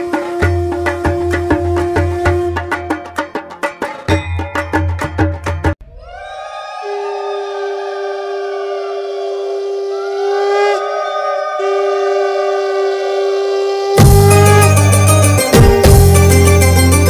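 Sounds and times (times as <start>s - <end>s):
conch shells blown: 0.0s - 3.0s, 6.8s - 17.0s.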